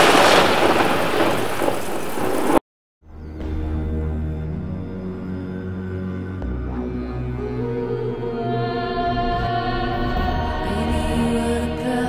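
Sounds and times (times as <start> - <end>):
rain hissing: 0.0 - 2.6
thunder rumble: 0.0 - 2.6.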